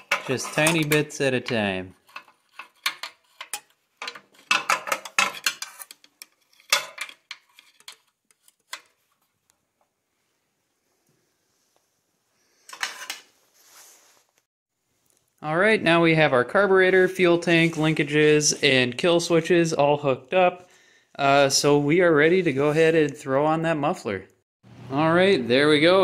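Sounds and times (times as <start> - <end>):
metal wrench clinking and scraping: 0.0 - 8.9
rustling: 12.9 - 15.3.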